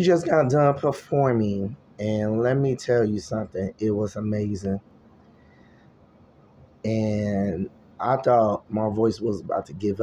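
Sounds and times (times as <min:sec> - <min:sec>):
man speaking: 0:00.0 - 0:04.8, 0:06.8 - 0:10.0.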